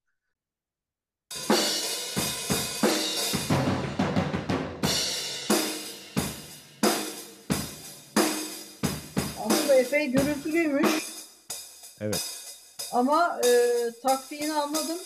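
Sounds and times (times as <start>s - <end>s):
snare drum: 1.4s - 11.2s
kick drum: 8.8s - 9.5s, 10.2s - 10.6s.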